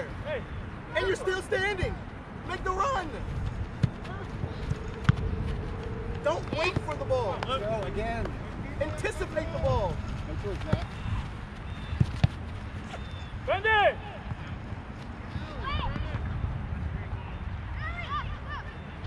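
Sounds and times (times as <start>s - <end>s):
outdoor background noise: 0.0s - 19.0s
ball being kicked: 3.7s - 5.4s, 11.9s - 13.0s
distant shouts and calls: 12.7s - 14.6s, 17.1s - 19.0s.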